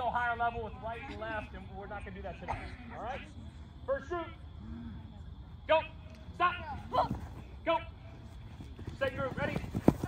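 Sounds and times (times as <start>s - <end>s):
running footsteps on artificial turf: 6.4s - 10.0s.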